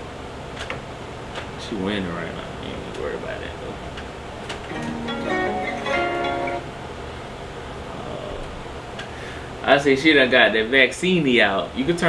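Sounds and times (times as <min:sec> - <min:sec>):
low steady room hum: 0:00.0 - 0:12.0
held musical notes from laptop speakers: 0:04.7 - 0:06.8.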